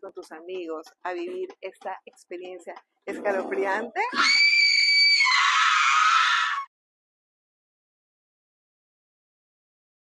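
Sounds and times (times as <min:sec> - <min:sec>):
high-pitched scream: 0:04.1 - 0:06.7.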